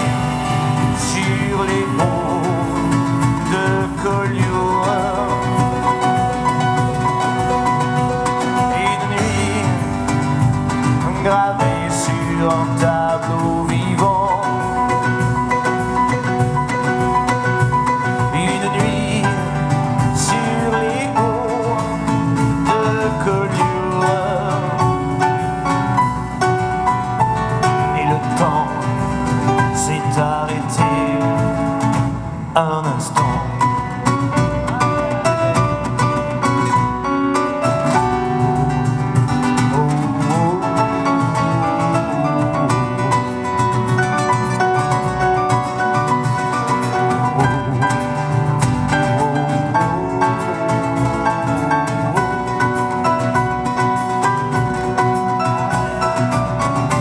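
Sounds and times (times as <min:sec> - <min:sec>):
acoustic guitar: 0:00.0 - 0:57.0
drum kit steady beat: 0:00.0 - 0:57.0
keyboard: 0:00.0 - 0:57.0
upright double bass: 0:00.0 - 0:57.0.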